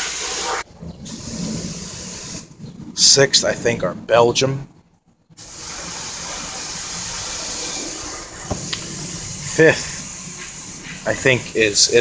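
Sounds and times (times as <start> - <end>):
steady background hiss: 5.4 - 12.0.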